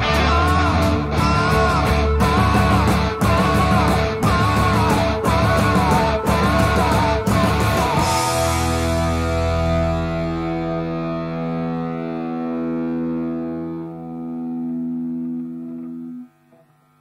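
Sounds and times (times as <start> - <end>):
distorted electric guitar chord ringing: 0.0 - 17.0.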